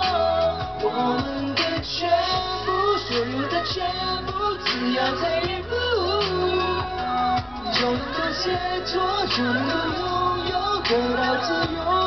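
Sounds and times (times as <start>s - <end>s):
man singing pop ballad: 0.0s - 12.0s
steady bass line: 0.0s - 12.0s.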